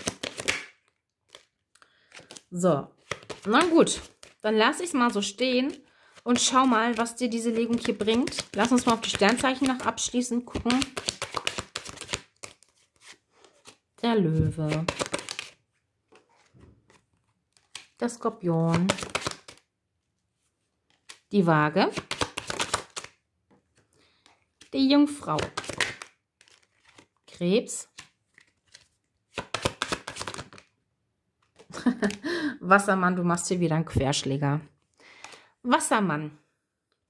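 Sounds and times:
cards flicking and sliding: 0:00.0 - 0:01.5, 0:03.0 - 0:04.4, 0:06.4 - 0:09.9, 0:10.5 - 0:13.8, 0:14.6 - 0:18.0, 0:18.6 - 0:19.6, 0:21.9 - 0:23.2, 0:25.4 - 0:27.0, 0:28.0 - 0:30.7
cards being shuffled: 0:00.0 - 0:19.7, 0:20.8 - 0:30.7, 0:31.4 - 0:32.2.

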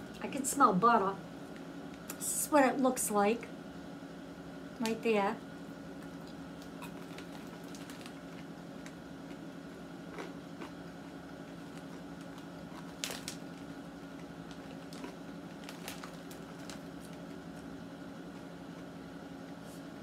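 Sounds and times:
steady low hum: 0:00.0 - 0:20.0
person chewing crunchy popcorn: 0:05.9 - 0:17.7.

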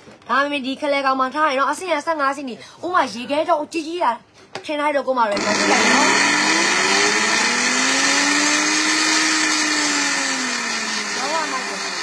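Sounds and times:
blender whirring: 0:05.4 - 0:12.0.

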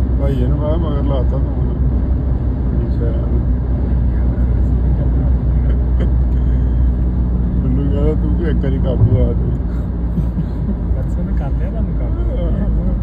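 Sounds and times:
car cabin road and engine rumble: 0:00.0 - 0:13.0.

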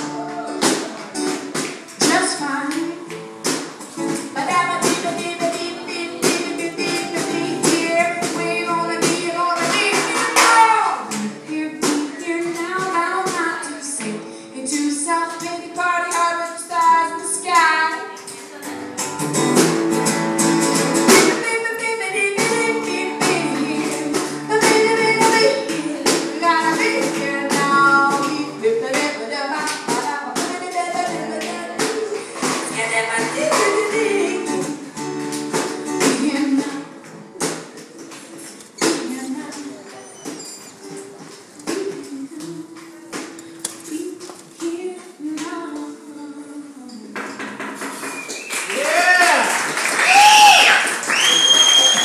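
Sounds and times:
acoustic guitar: 0:00.0 - 0:52.0
woman singing: 0:02.0 - 0:03.2, 0:04.1 - 0:19.0, 0:21.0 - 0:34.9, 0:36.0 - 0:37.2, 0:38.8 - 0:40.1, 0:40.9 - 0:47.6.

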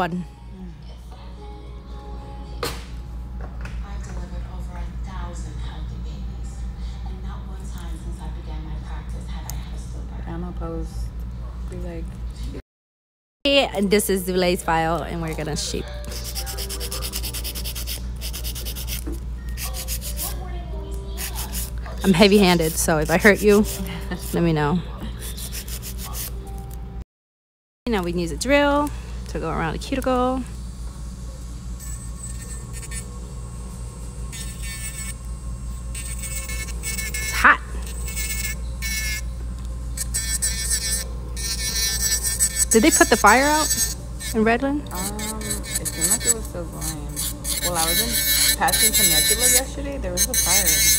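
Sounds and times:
nail file scratching a nail: 0:16.1 - 0:20.4, 0:21.2 - 0:24.4, 0:25.2 - 0:26.4, 0:31.8 - 0:33.1, 0:34.3 - 0:35.2, 0:36.0 - 0:39.2, 0:40.0 - 0:50.9.

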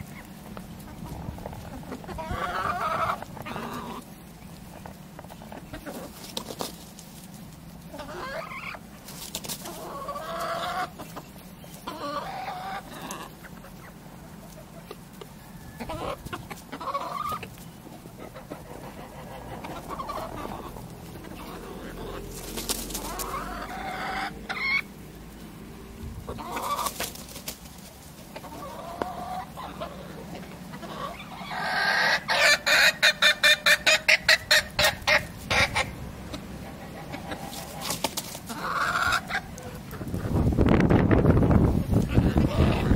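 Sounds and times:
chickens clucking: 0:00.0 - 0:42.9.

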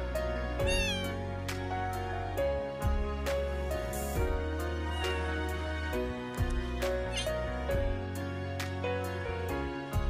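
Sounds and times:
background music with beat: 0:00.1 - 0:10.0
kitten meowing: 0:00.6 - 0:01.2, 0:04.8 - 0:05.5, 0:07.0 - 0:07.4.

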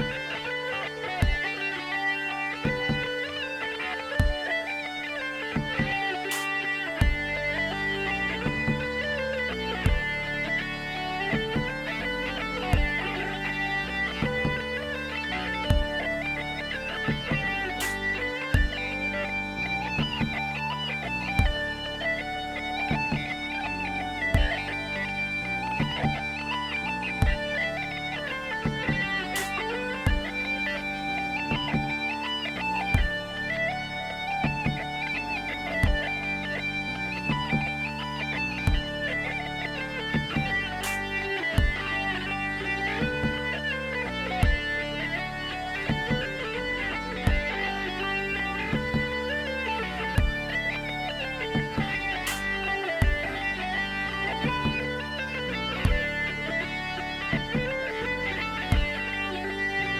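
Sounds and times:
distorted mandolin melody: 0:00.0 - 0:59.9
low beat thumps: 0:01.2 - 0:01.8, 0:02.6 - 0:03.4, 0:04.1 - 0:04.7, 0:05.6 - 0:14.9, 0:15.6 - 0:20.6, 0:21.3 - 0:21.8, 0:22.8 - 0:23.5, 0:24.2 - 0:24.9, 0:25.7 - 0:26.4, 0:27.1 - 0:30.8, 0:31.4 - 0:32.1, 0:32.9 - 0:35.1, 0:35.7 - 0:49.3, 0:49.9 - 0:59.7.

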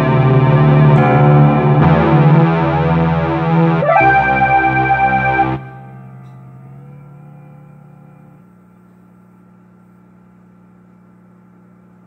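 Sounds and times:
keyboard notes ringing: 0:00.0 - 0:08.8.

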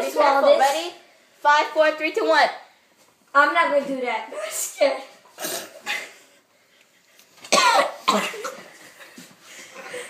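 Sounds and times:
person coughing and spluttering: 0:05.4 - 0:06.1, 0:07.5 - 0:08.6.

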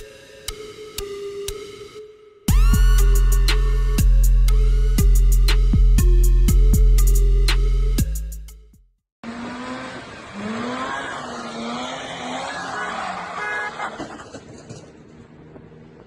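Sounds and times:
car engine revving hard: 0:09.2 - 0:14.2
tyre screech: 0:09.4 - 0:14.9.

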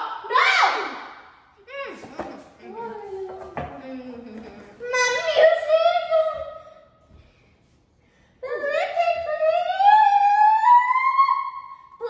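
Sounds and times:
girl singing a long high note: 0:08.4 - 0:11.8.

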